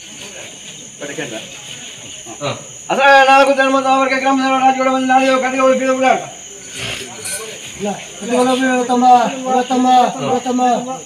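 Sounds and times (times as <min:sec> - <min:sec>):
crickets chirring: 0:00.0 - 0:11.0
faint voices of people: 0:00.0 - 0:11.0.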